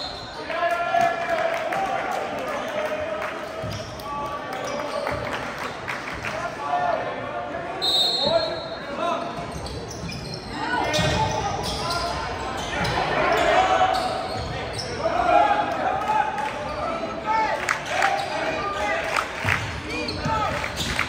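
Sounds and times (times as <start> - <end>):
short high whistle: 7.8 - 8.8.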